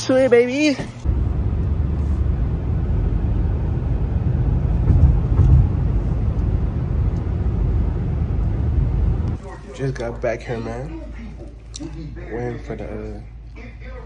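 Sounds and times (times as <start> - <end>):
car driving heard from cabin: 1.0 - 9.4.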